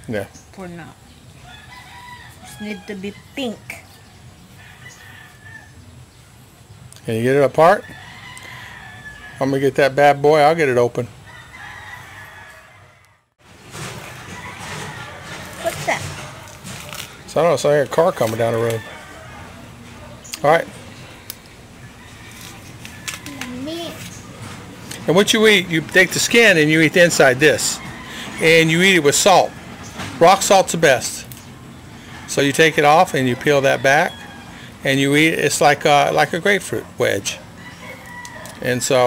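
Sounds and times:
child's wordless voice sound: 23.2 - 24.2
rooster crowing faintly: 36.0 - 39.0.

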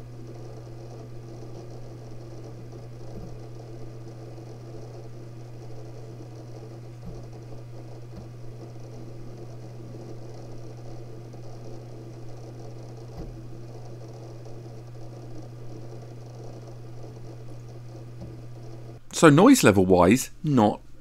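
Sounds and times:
faint hard drive clicks: 0.0 - 19.0
steady hum and fan noise: 0.0 - 21.0.

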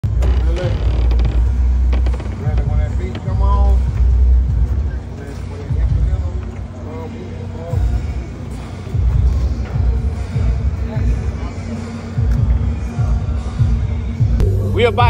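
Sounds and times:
deep rumble: 0.0 - 5.1
indistinct voices: 0.0 - 15.0.

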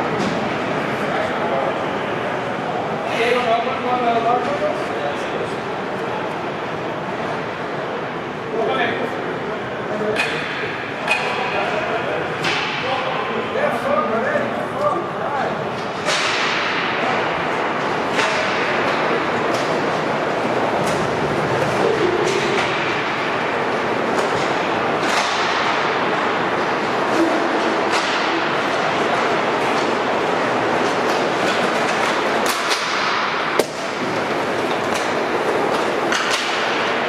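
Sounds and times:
players' voices in echoing hall: 0.0 - 37.0
hockey stick clicks: 30.9 - 37.0.

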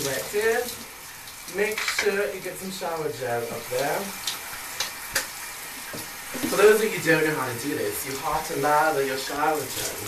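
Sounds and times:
shower spray hissing: 0.0 - 10.0.

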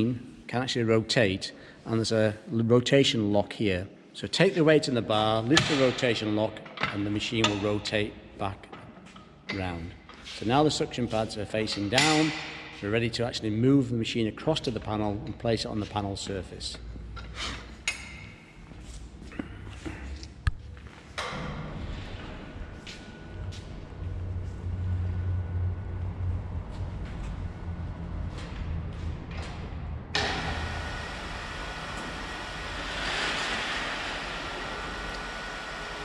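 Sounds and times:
crane electric drive humming: 20.6 - 36.0.

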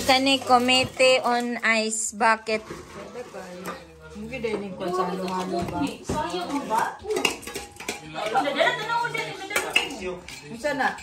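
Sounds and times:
utensil scraping metal bowl: 2.2 - 5.6.

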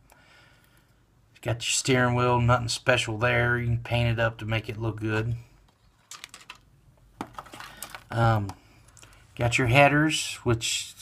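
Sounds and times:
plastic parts clicking: 5.7 - 9.2.

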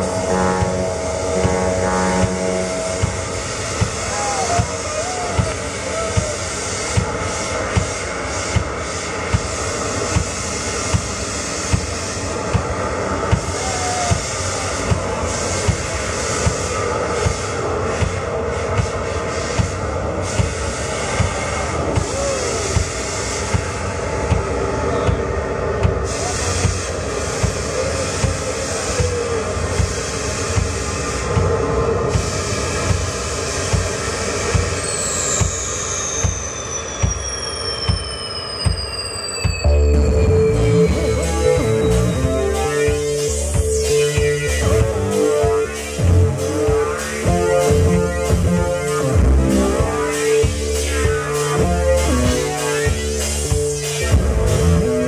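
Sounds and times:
droning distorted keyboard: 0.0 - 6.6, 39.4 - 55.0
heavy drum beat: 0.0 - 7.9, 39.8 - 55.0
high falling whine: 0.0 - 15.2, 27.0 - 55.0.

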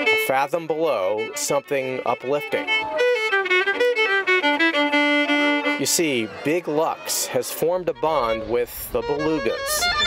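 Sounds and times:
solo violin bowed: 0.0 - 6.4, 7.9 - 10.0.

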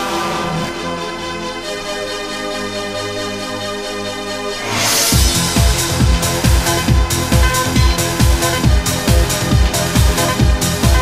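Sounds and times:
four-on-the-floor kick drum: 5.2 - 11.0
held synth tones: 6.6 - 11.0.

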